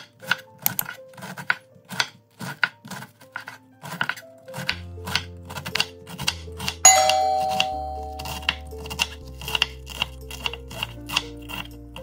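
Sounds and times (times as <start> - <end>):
knife chopping cabbage on board: 0.0 - 6.8, 7.6 - 12.0
ringing bell chime: 6.9 - 9.0.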